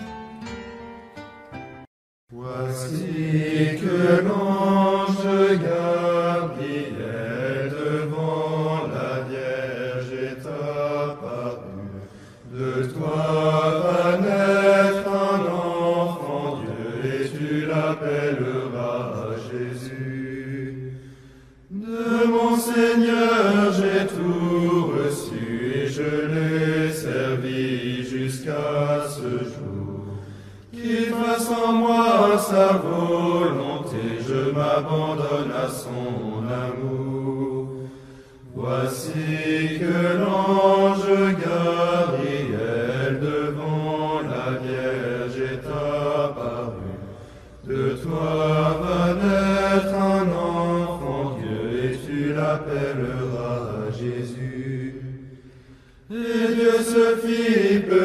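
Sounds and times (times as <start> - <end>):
slow sung hymn chant: 2.3 - 58.0.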